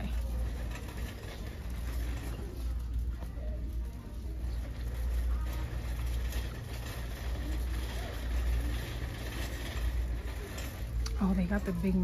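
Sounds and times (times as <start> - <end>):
indistinct voices of shoppers: 0.0 - 12.0.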